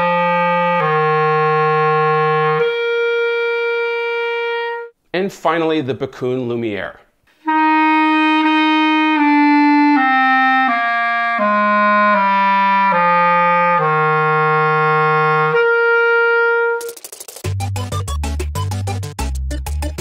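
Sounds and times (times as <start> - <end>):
clarinet playing a scale: 0.0 - 5.0, 7.4 - 17.0
upbeat electronic music: 15.5 - 20.0.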